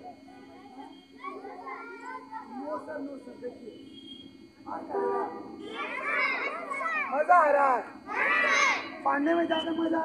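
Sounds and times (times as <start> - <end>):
children calling out: 0.8 - 2.6, 5.6 - 7.2, 8.0 - 9.0.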